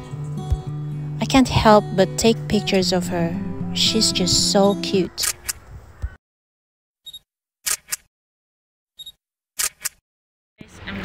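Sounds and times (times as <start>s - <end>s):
camera shutter clicking: 5.2s - 5.6s, 7.7s - 8.0s, 9.6s - 10.0s.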